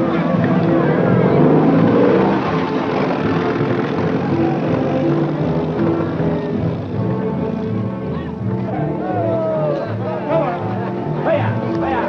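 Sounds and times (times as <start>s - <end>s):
car engine pulling away: 0.0s - 8.5s.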